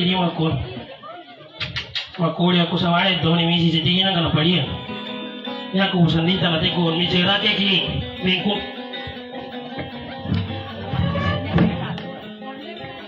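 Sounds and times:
strummed acoustic guitars: 4.2 - 13.0
man singing: 5.6 - 13.0.

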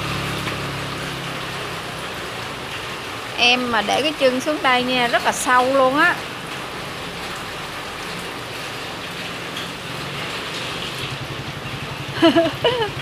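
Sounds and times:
heavy rain on water and pavement: 0.0 - 13.0.

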